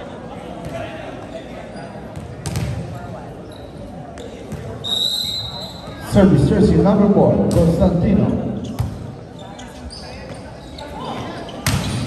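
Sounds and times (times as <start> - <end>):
murmur of spectators: 0.0 - 12.0
referee's whistle: 4.8 - 5.9.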